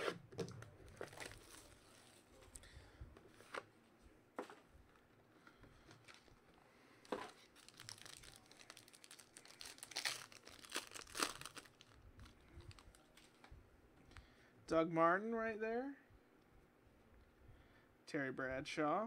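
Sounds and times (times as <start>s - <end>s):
wrapper tearing and crinkling: 0.9s - 1.9s, 7.4s - 13.2s.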